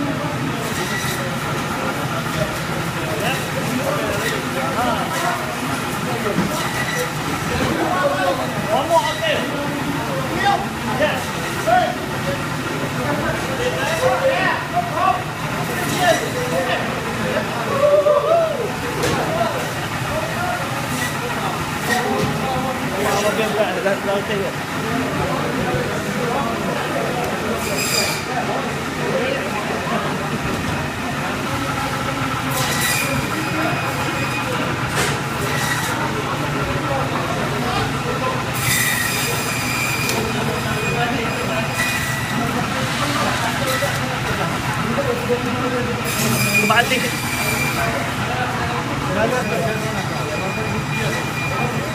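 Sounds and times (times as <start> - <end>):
indistinct voices of workers: 0.0 - 51.9
machinery hum: 0.0 - 51.9.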